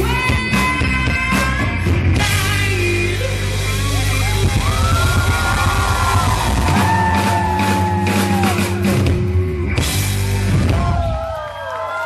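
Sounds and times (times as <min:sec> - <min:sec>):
distorted electric guitars: 0:00.0 - 0:11.2
drum kit: 0:00.0 - 0:11.5
bass guitar: 0:00.0 - 0:11.6.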